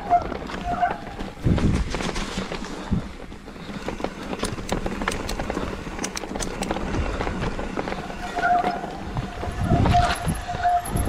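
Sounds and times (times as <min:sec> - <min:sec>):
bike chain and frame rattling: 0:00.0 - 0:11.0
tyres crunching over stones: 0:00.0 - 0:11.0
high squeal: 0:08.2 - 0:11.0.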